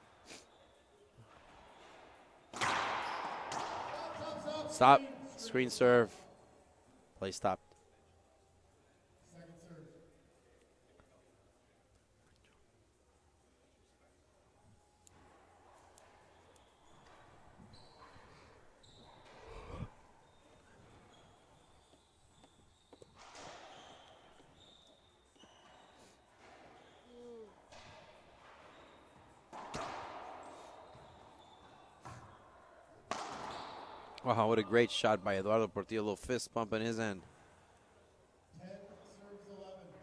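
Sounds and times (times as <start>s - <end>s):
racquetball hitting racquets and walls: 1.3s - 4.7s, 22.4s - 24.8s, 25.4s - 34.3s
shoes squeaking on hardwood floor: 16.2s - 29.7s, 30.5s - 32.4s.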